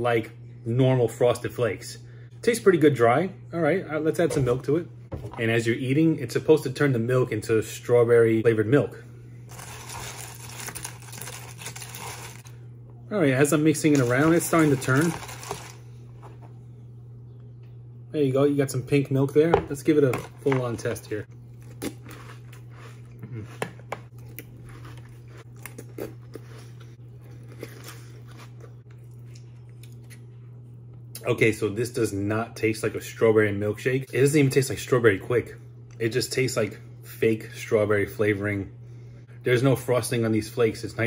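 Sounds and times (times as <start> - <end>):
steady low hum: 0.0 - 41.0
person chewing cereal: 9.5 - 12.5, 21.4 - 30.3.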